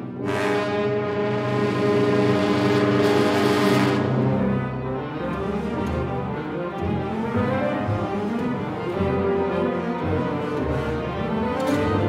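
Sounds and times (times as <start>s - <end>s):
orchestra holding loud chord: 0.0s - 6.6s.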